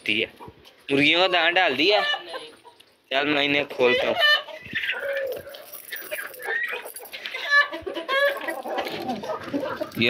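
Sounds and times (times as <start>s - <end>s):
chickens clucking: 0.1s - 10.0s.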